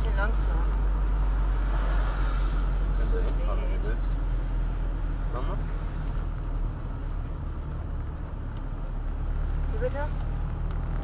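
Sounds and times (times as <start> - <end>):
car engine hum: 0.0 - 11.0
tyre noise on wet road: 0.0 - 11.0.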